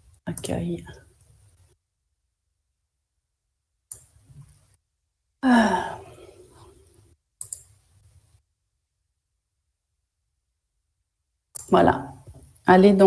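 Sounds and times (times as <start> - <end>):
person sighing: 5.4 - 6.8.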